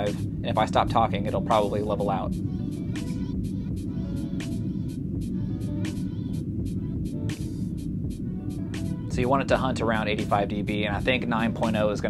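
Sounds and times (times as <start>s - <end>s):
low rumble test tone: 0.0s - 12.0s
music with steady beat: 0.0s - 12.0s.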